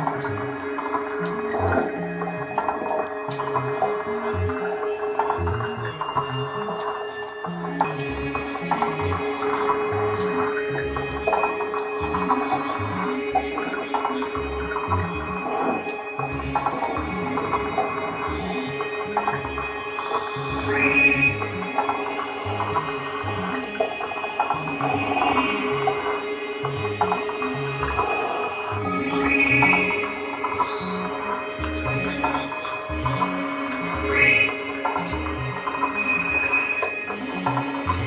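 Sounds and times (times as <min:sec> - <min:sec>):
higher steady synth tone: 0:00.0 - 0:38.0
low synth pulses: 0:00.0 - 0:38.0
scattered clicks: 0:00.0 - 0:38.0
synthesizer drone: 0:00.0 - 0:38.0
bright high synth tone: 0:13.6 - 0:38.0.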